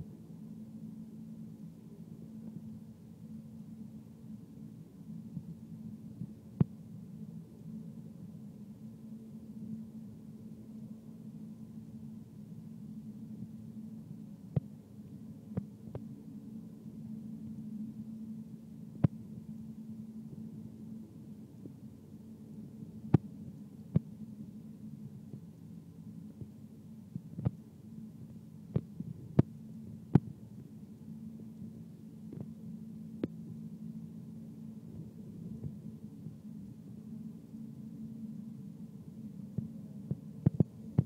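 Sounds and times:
low hum: 0:00.0 - 0:41.0.

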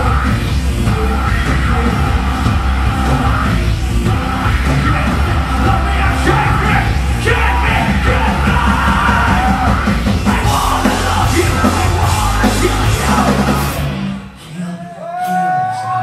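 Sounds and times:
loud drums: 0:00.0 - 0:14.6
distorted guitars: 0:00.0 - 0:16.0.

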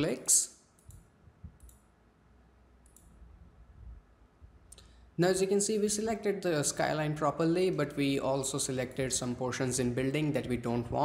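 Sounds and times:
computer mouse clicks: 0:00.8 - 0:01.9, 0:02.8 - 0:03.2.

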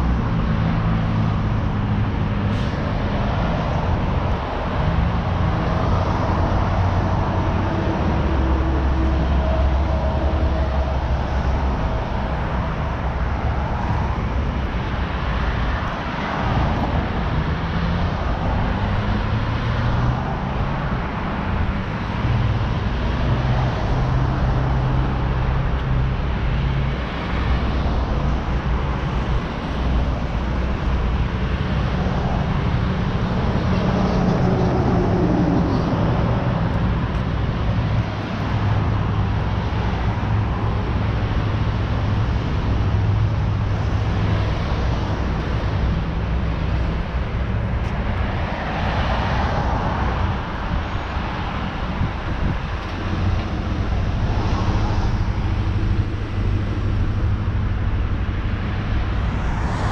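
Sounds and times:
road traffic: 0:00.0 - 0:59.9.

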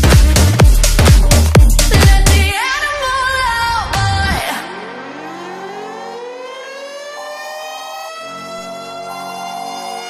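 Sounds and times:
siren wailing: 0:04.5 - 0:10.0
notes sounding on and off: 0:04.9 - 0:10.0.

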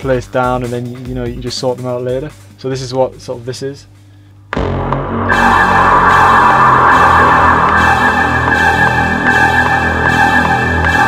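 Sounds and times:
low bassy synth: 0:04.5 - 0:10.9
bright steady synth layer: 0:04.5 - 0:11.0.

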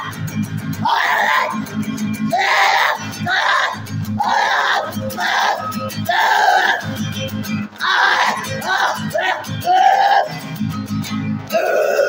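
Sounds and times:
strummed acoustic guitar: 0:00.0 - 0:11.6
man shout-singing: 0:00.8 - 0:01.6, 0:02.3 - 0:07.0, 0:07.8 - 0:10.4, 0:11.5 - 0:12.0.

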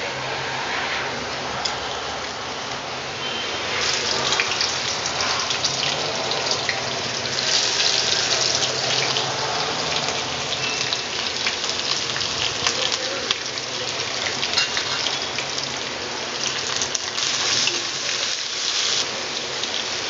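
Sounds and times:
food frying in hot oil: 0:00.0 - 0:20.0.

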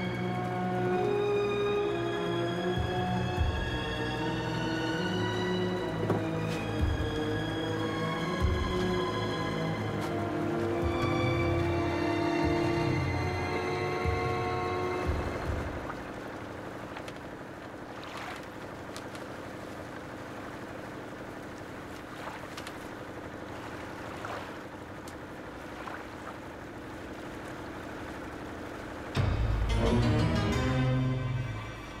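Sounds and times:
music: 0:00.0 - 0:16.0, 0:29.0 - 0:32.0
motorboat running: 0:00.0 - 0:32.0
faint water splashes: 0:14.8 - 0:29.2.

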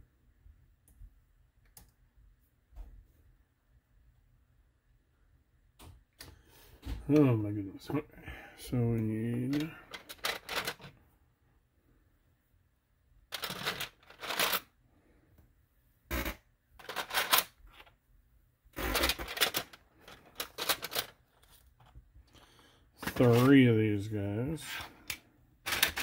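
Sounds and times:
plastic pieces rattling in a bin: 0:09.5 - 0:10.9, 0:13.3 - 0:14.7, 0:16.8 - 0:17.9, 0:18.8 - 0:21.6, 0:23.0 - 0:23.6, 0:25.6 - 0:26.0.

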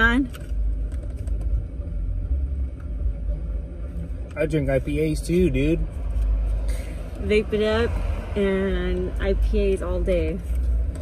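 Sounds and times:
car rumble from inside: 0:00.0 - 0:11.0.

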